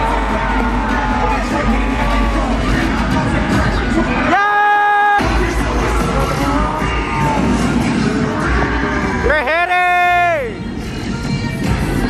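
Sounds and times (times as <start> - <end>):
cheerleading music over speakers: 0.0 - 12.0
sung vocals: 0.0 - 12.0.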